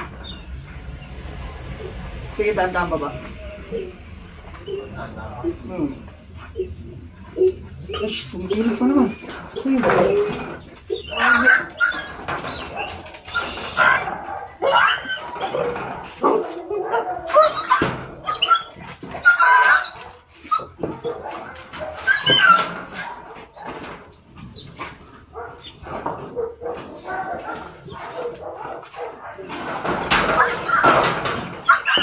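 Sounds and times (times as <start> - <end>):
dog whimpering and yelping: 3.6 - 4.0, 4.6 - 24.0, 30.2 - 32.0
dog barking: 13.8 - 19.9, 20.6 - 23.5, 25.3 - 29.6.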